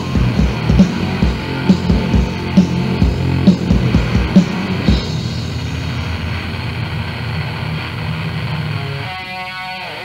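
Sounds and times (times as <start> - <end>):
distorted metal guitar chord: 0.0 - 10.0.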